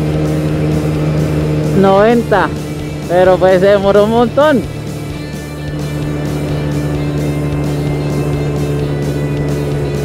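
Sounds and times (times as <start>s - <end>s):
background music with light beat: 0.0s - 10.0s
scooter engine droning at high revs: 0.0s - 10.0s.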